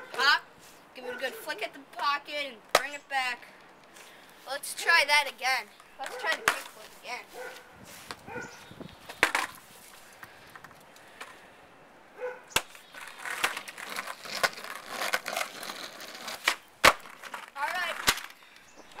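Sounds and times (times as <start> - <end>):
skateboard wheels rolling on asphalt: 4.0 - 11.5, 12.5 - 19.0
skateboard clacking on asphalt: 5.8 - 6.9, 9.0 - 9.6, 12.5 - 18.4.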